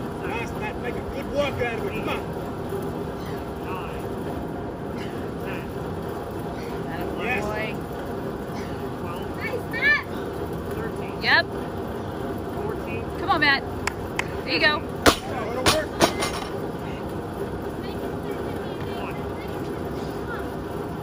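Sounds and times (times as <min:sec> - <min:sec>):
drum fan humming: 0:00.0 - 0:21.0.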